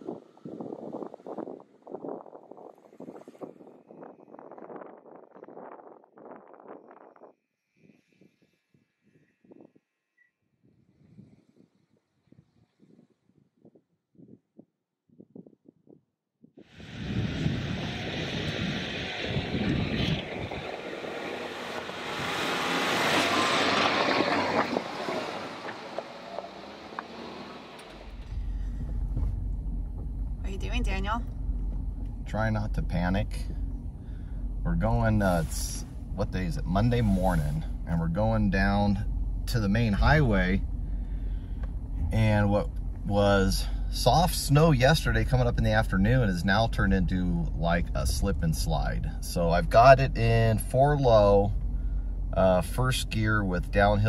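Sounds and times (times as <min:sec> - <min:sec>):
low engine and road rumble: 0:00.0 - 0:07.3, 0:16.6 - 0:54.0
tires crunching on snow: 0:00.0 - 0:09.7, 0:16.8 - 0:54.0
wind rushing over microphone: 0:00.0 - 0:16.0, 0:16.6 - 0:27.4.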